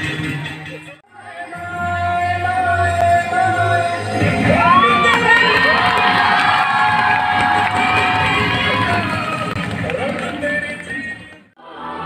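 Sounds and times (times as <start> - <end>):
crowd cheering and shouting: 1.1 - 12.0.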